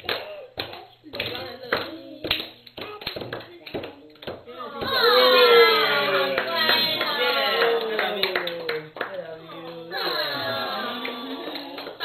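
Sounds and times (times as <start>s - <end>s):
hand clapping: 0.0s - 5.0s, 6.4s - 9.2s
group singing a birthday song: 1.0s - 3.8s.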